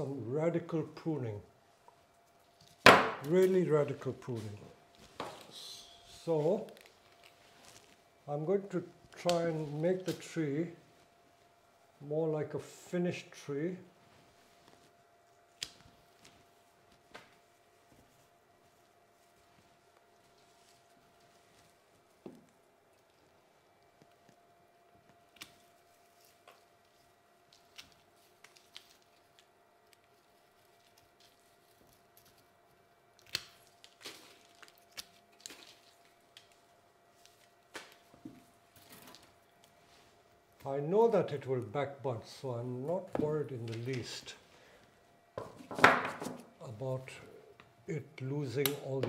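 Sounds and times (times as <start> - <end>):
faint steady hum: 0.0 - 49.0.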